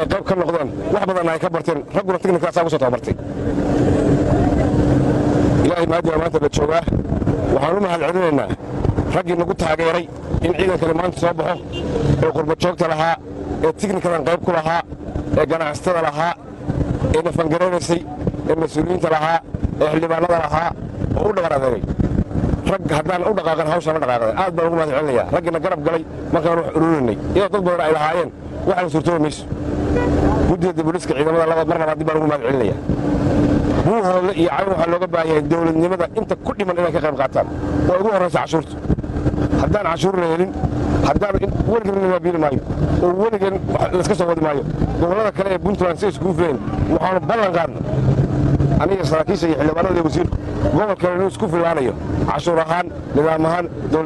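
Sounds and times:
people talking: 0.0s - 3.2s, 5.6s - 16.4s, 17.0s - 21.9s, 22.7s - 32.8s, 33.8s - 38.8s, 39.6s - 48.1s, 48.7s - 54.0s
constant hum: 0.0s - 54.0s
low rumble: 0.0s - 54.0s
man speaking: 7.5s - 16.4s, 22.7s - 29.5s, 30.4s - 32.8s, 39.6s - 48.0s, 48.8s - 54.0s.

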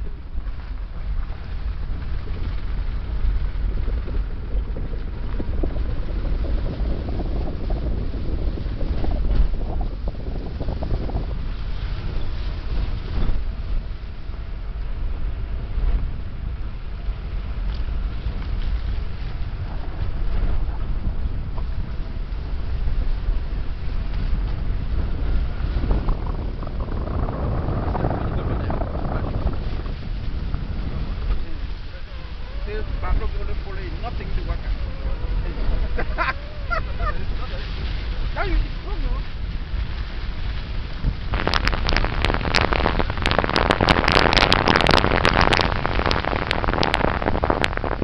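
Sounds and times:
moving car rumble: 0.0s - 48.0s
vehicle driving on dirt road: 0.0s - 48.0s
person laughing: 35.3s - 37.7s.

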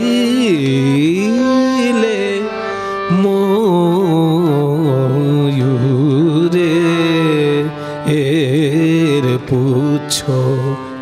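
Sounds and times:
man singing devotional melody: 0.0s - 11.0s.

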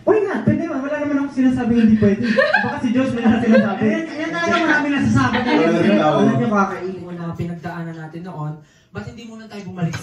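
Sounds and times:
people talking: 0.1s - 8.4s.

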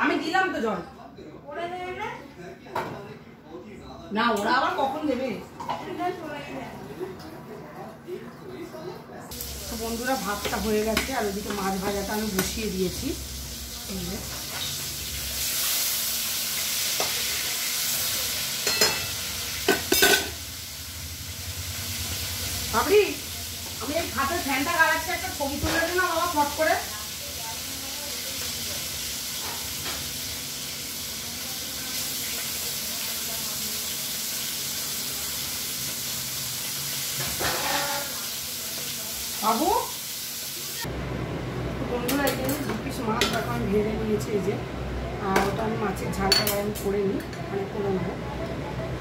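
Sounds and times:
food sizzling in a pan: 9.3s - 41.4s
spatula scraping a pan: 37.2s - 38.2s.

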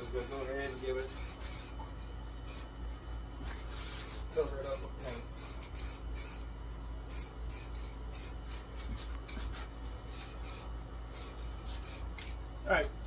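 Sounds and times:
steady low hum: 0.0s - 13.0s
spray-paint can hissing: 0.2s - 1.8s, 2.5s - 2.7s, 3.7s - 6.4s, 7.1s - 8.4s, 10.1s - 12.3s.

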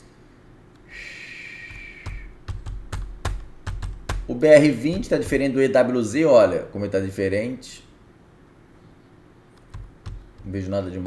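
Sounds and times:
computer keyboard typing: 1.7s - 5.5s, 9.6s - 10.6s.

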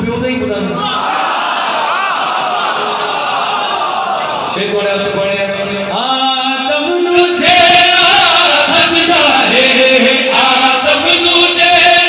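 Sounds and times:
men chanting over a pa system: 5.7s - 12.0s.

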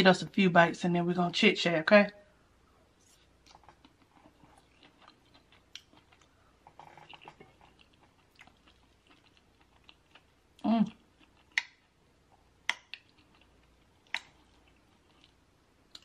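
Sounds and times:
soft closed-mouth hum: 0.0s - 16.0s
close-miked chewing: 3.0s - 16.0s.

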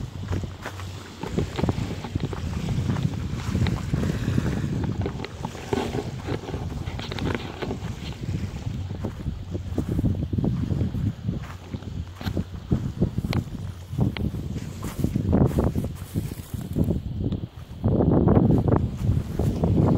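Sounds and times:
footsteps crunching on twigs: 0.0s - 17.8s, 18.4s - 19.9s
wind buffeting microphone: 0.0s - 19.9s.

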